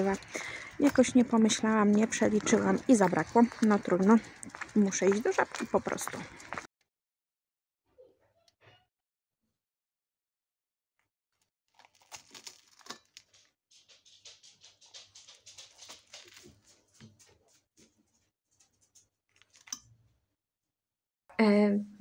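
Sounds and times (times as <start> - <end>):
fork crunching and scraping plate: 0.0 - 5.6, 11.8 - 13.4, 19.3 - 19.8.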